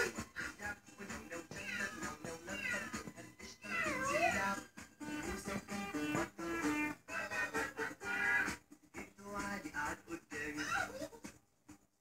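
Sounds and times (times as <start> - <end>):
background music: 0.0 - 12.0
cat meowing: 1.6 - 3.0, 3.6 - 4.5.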